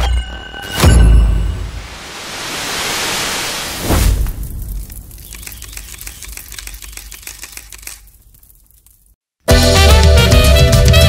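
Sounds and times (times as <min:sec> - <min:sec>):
rapid crackling clicks: 0:04.9 - 0:09.1.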